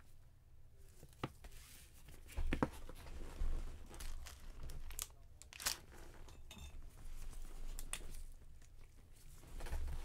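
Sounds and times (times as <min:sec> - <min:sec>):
packaging crinkling and tearing: 0:03.8 - 0:06.0.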